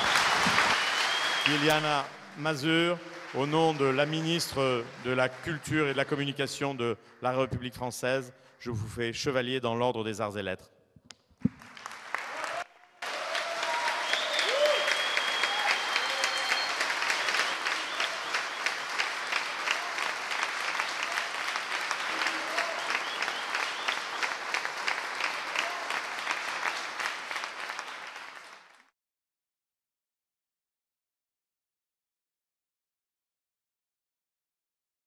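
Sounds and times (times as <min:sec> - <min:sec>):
audience applause: 0:00.0 - 0:06.4, 0:11.5 - 0:28.9.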